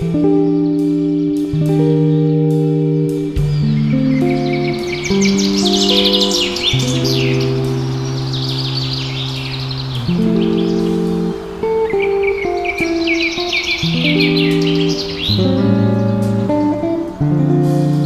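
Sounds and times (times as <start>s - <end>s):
slow music with low held chords: 0.0s - 18.0s
small birds chirping: 0.0s - 18.0s.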